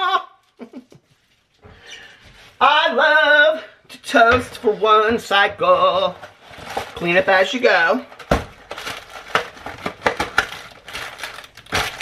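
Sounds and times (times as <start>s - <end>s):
cardboard packaging crinkling: 5.9s - 12.0s.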